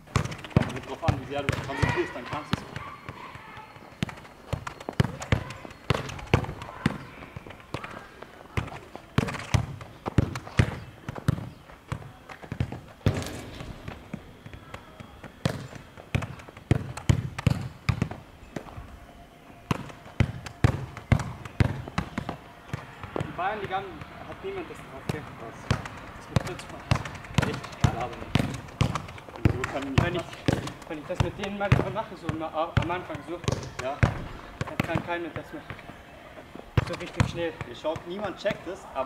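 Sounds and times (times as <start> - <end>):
football kicks and bounces: 0.0 - 18.7, 19.7 - 35.9, 36.8 - 38.7.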